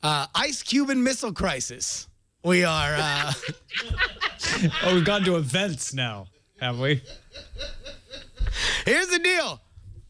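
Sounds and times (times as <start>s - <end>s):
men chuckling: 2.9s - 5.4s, 6.8s - 8.6s.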